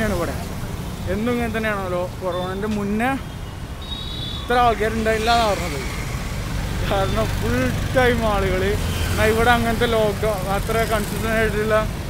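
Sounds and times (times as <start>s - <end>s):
man talking: 0.0s - 0.5s, 1.1s - 3.2s, 4.5s - 6.0s, 6.8s - 12.0s
street traffic rumble: 0.0s - 12.0s.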